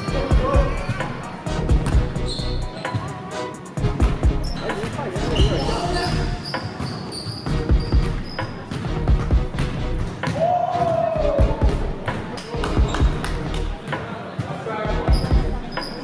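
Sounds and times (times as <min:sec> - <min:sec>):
sneakers squeaking on court: 0:01.7 - 0:03.3, 0:04.0 - 0:10.9, 0:13.8 - 0:16.0.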